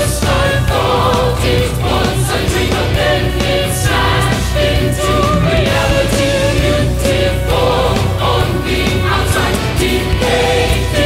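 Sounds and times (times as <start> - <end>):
choir singing long held notes: 0.0 - 11.0
metal band with drums: 0.0 - 11.0.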